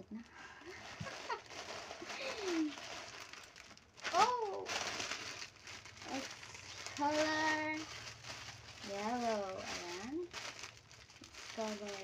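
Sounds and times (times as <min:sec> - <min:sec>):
plastic packaging crinkling: 0:00.2 - 0:12.0.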